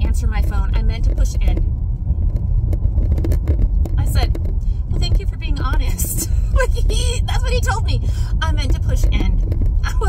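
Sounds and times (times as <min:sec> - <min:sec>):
car engine and road rumble: 0:00.0 - 0:10.0
faint clicks and rattles: 0:00.0 - 0:10.0.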